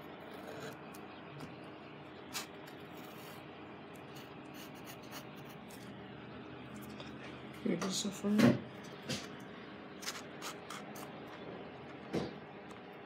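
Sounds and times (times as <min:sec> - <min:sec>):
paper rubbing and scratching: 0:02.3 - 0:03.4, 0:04.0 - 0:05.9.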